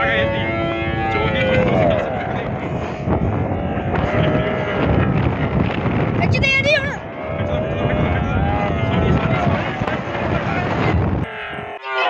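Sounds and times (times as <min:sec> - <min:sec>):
wind buffeting microphone: 0:00.0 - 0:11.7
scooter tyre noise on dirt: 0:01.2 - 0:11.6.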